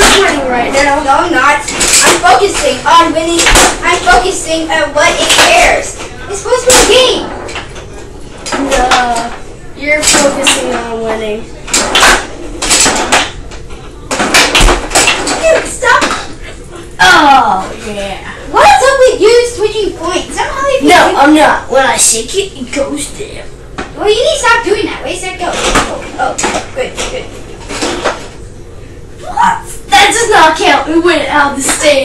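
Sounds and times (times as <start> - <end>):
foosball pieces clattering: 0.0 - 4.4, 11.7 - 16.3
foosball game clattering: 0.0 - 16.4, 25.1 - 28.4.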